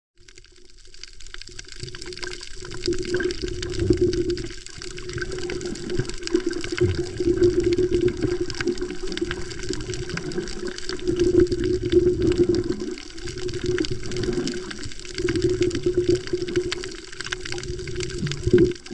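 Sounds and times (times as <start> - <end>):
crackling clicks: 0.2 - 18.9
muffled underwater wash: 0.2 - 18.9.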